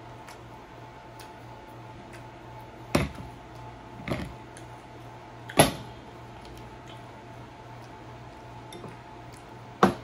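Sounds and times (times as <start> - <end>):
electric fan humming: 0.0 - 10.0.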